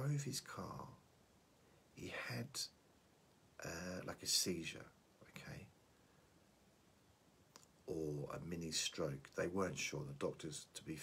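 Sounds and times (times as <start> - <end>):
man murmuring softly: 2.0 - 2.8, 3.6 - 5.8, 7.9 - 11.0.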